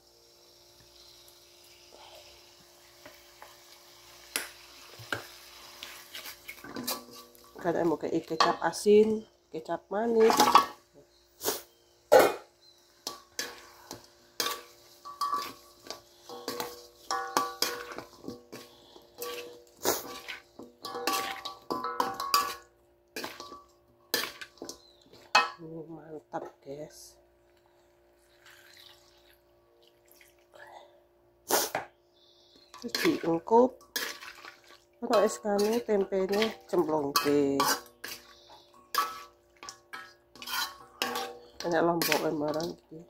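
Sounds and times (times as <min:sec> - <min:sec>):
spatula scraping a wok: 0:04.8 - 0:08.6, 0:11.4 - 0:25.6, 0:32.4 - 0:42.8.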